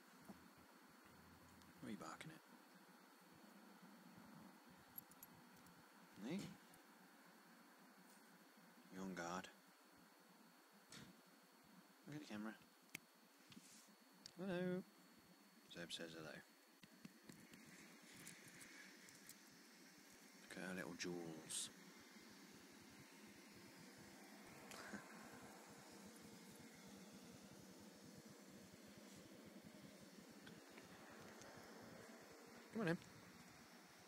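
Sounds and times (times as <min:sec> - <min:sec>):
low background hum: 0:00.0 - 0:34.0.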